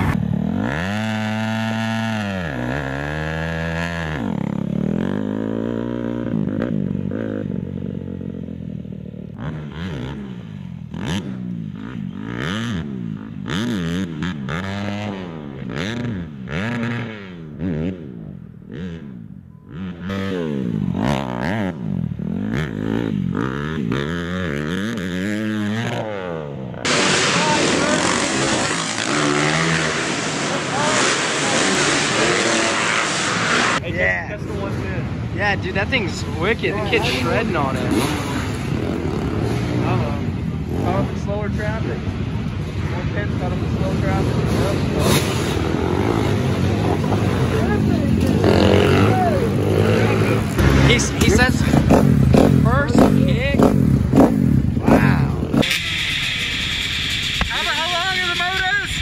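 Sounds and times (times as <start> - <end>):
dirt bike engines revving: 0.0 - 59.0
loud hissy engine sound: 26.9 - 33.8, 55.6 - 59.0.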